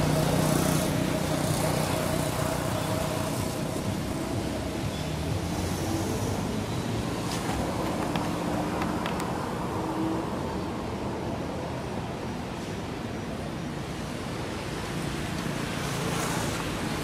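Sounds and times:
roadside hiss and rumble: 0.0s - 17.0s.

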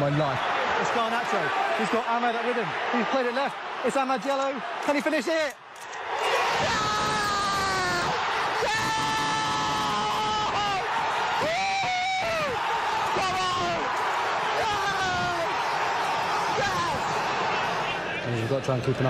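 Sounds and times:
fans shouting close by: 0.0s - 18.4s
crowd cheering and yelling: 0.0s - 19.0s
crowd roar in stands: 0.0s - 19.0s.

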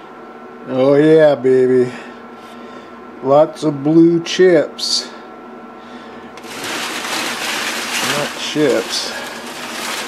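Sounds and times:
metal turnings rustling: 6.4s - 10.0s.

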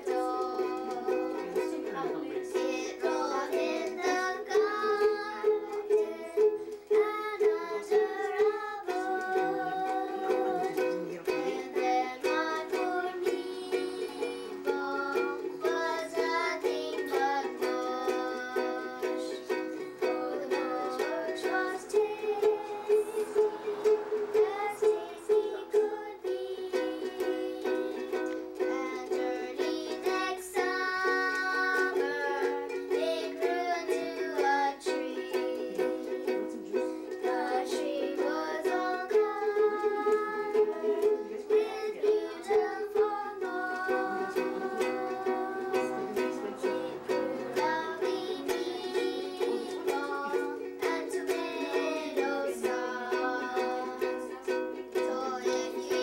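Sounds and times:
girls singing: 0.0s - 56.0s
ukulele strumming chords: 0.0s - 56.0s.

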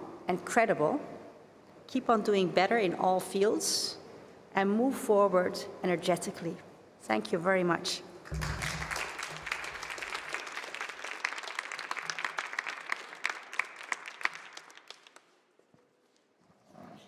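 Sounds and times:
audience applauding: 8.3s - 15.4s.

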